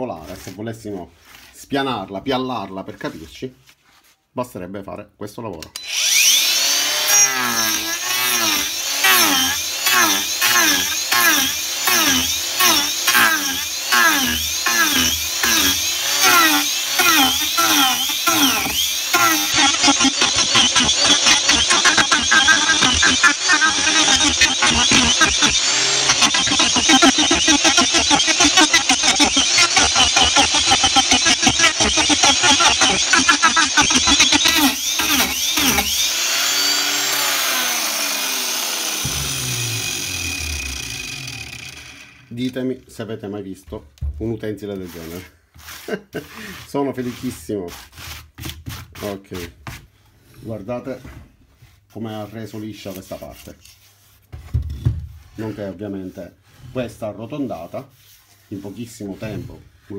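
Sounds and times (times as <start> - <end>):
angle grinder planing wood: 5.8 - 42.6, 44.8 - 48.2, 55.3 - 59.9.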